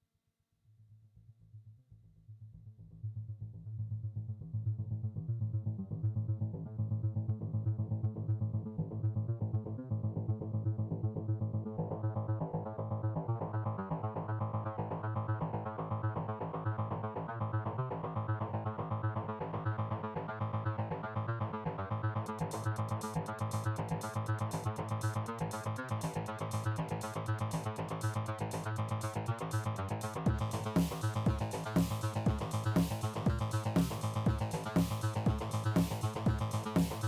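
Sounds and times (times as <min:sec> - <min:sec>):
electronic synthesizer music: 0:18.6 - 0:37.0.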